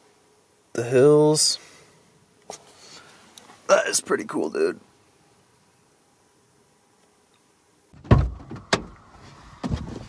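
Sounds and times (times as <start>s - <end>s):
car door shutting: 8.0s - 10.0s.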